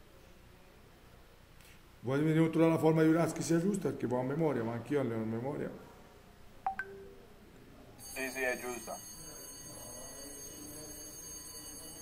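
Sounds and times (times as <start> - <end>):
electronic chime beeps: 6.7 - 7.2.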